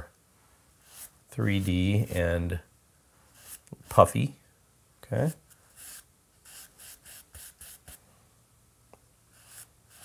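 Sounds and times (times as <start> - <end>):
charcoal scratching on paper: 0.8 - 2.2, 3.3 - 4.0, 5.6 - 8.0, 9.3 - 10.0.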